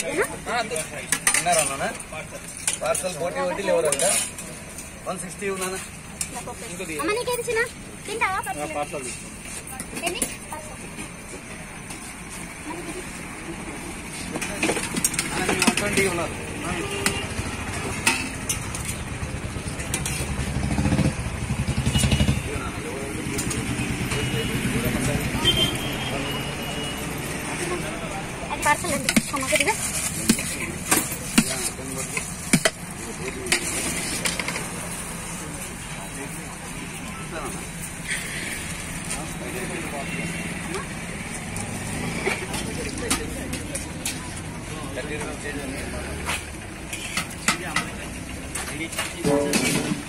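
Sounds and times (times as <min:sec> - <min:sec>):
street traffic: 0:00.0 - 0:50.0
spoons clinking against steel pots: 0:00.6 - 0:03.1, 0:17.8 - 0:19.0, 0:46.8 - 0:48.2
crowd chatter: 0:05.8 - 0:50.0
motorcycle engine running: 0:16.4 - 0:25.8.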